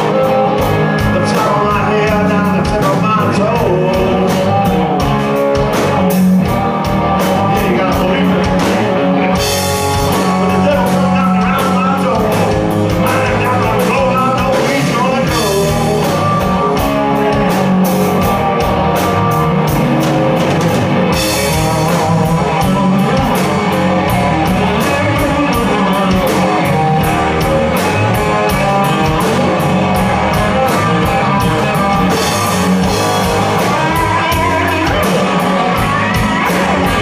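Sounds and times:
bass guitar: 0.0s - 37.0s
drum kit: 0.0s - 37.0s
electric guitar: 0.0s - 37.0s.

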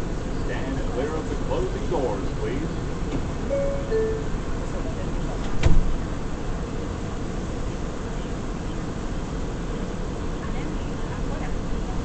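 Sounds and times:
subway car wheels rumbling: 0.0s - 12.0s.

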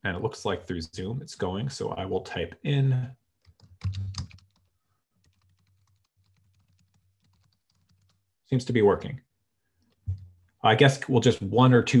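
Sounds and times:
computer keyboard typing: 3.4s - 8.2s.

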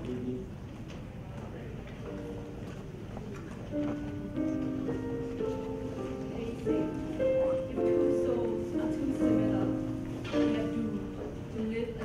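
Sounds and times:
faint held musical notes: 0.0s - 12.0s.

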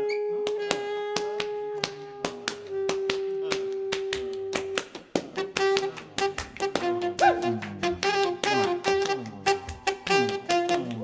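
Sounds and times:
saxophone ensemble held notes: 0.0s - 11.0s.

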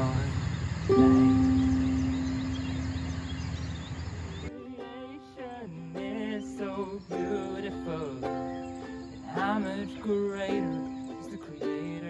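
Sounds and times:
faint high chirping: 0.0s - 12.0s
ukulele strum ringing: 0.9s - 3.2s, 4.5s - 12.0s
ukulele tune: 0.9s - 3.6s, 4.5s - 12.0s.

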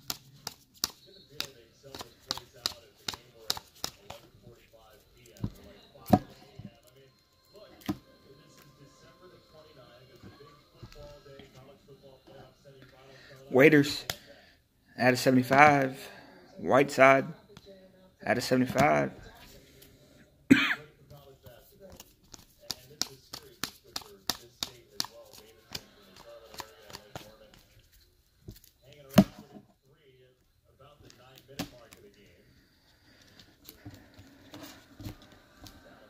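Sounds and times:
plastic card stacks clacking on table: 0.0s - 4.2s, 21.9s - 27.6s
man clearing throat: 20.5s - 20.9s
faint rustling of card sleeves: 21.4s - 28.8s.

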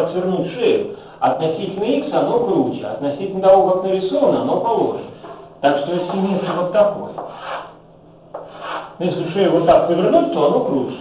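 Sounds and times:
chalk scraping on chalkboard: 6.0s - 9.0s.

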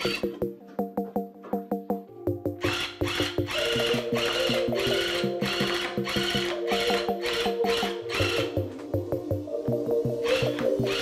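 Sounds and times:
music with plucked beat: 0.0s - 11.0s
electric tufting gun running: 2.6s - 8.6s.

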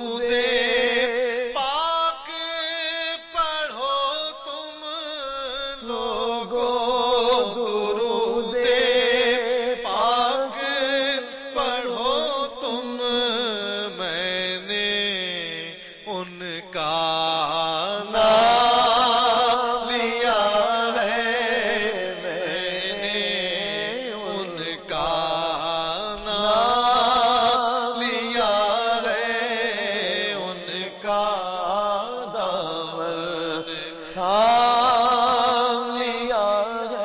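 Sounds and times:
man singing devotional song: 0.0s - 37.0s.

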